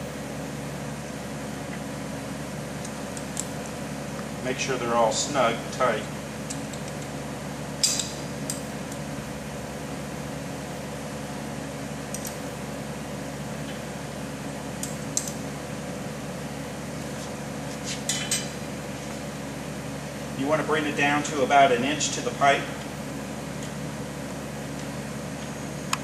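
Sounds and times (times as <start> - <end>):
steady background hum: 0.0 - 26.0.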